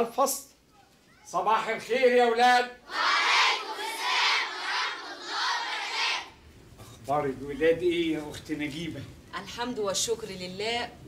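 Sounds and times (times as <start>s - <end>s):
children shouting in unison: 2.9s - 6.3s.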